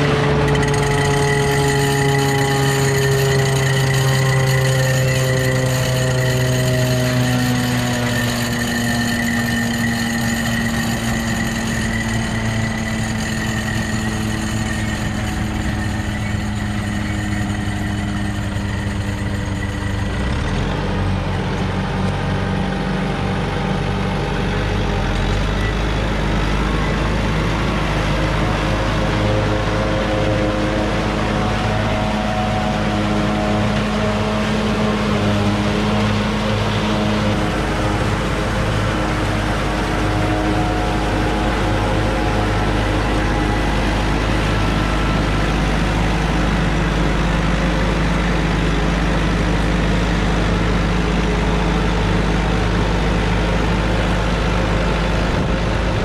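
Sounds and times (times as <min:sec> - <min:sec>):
forage harvester chopping corn: 0:00.0 - 0:20.6
tractor engine running: 0:00.0 - 0:56.0.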